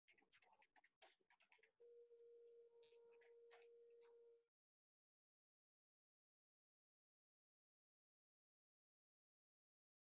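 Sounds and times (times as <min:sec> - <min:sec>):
faint electronic tone: 0:01.8 - 0:04.5.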